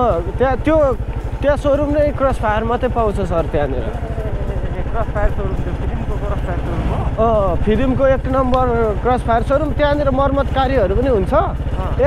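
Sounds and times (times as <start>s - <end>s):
motorcycle engine cruising: 0.0s - 12.0s.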